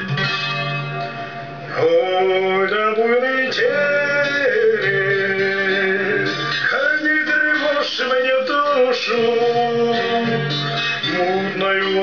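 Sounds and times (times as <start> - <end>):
acoustic guitar: 0.0 - 12.0
man singing: 1.7 - 12.0.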